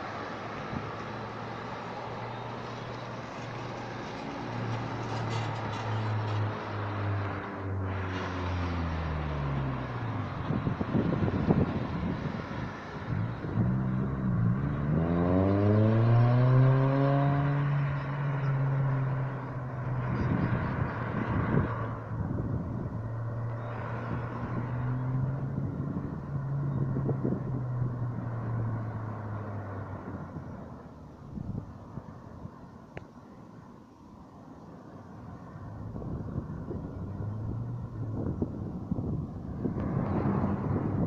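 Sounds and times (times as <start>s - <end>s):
vehicle accelerating away: 0.0s - 30.7s, 36.1s - 41.0s
cars passing on road: 0.0s - 41.0s.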